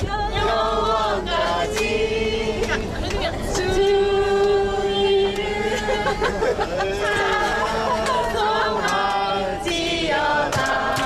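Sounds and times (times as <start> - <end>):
woman singing into microphone: 0.0 - 0.6, 2.6 - 6.4
group singing worship song: 0.0 - 11.0
hand clapping: 8.8 - 9.8, 10.5 - 11.0.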